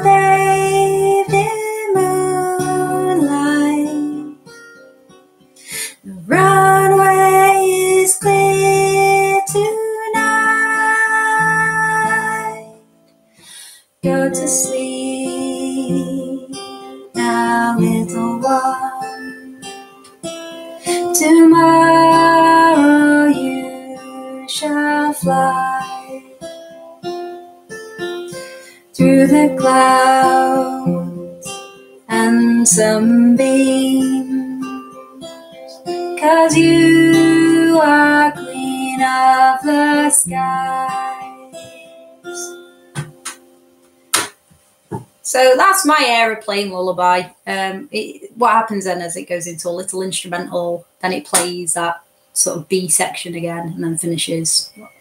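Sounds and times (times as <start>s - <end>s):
woman singing a lullaby: 0.0s - 4.4s, 5.6s - 12.8s, 14.0s - 19.8s, 20.8s - 26.5s, 28.3s - 42.6s
acoustic guitar: 0.0s - 55.0s.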